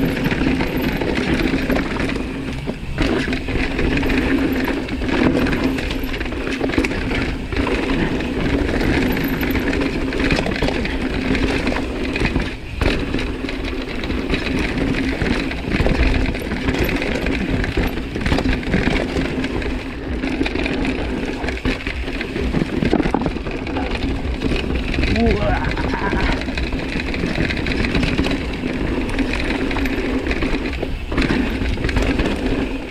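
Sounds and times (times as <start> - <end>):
bike knocking and rattling: 0.0 - 32.9
bike tyres rolling over dirt: 0.0 - 32.9.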